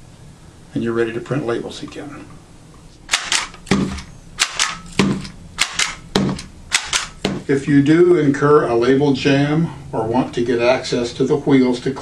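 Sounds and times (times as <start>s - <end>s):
labeling gun clicking: 3.1s - 7.2s.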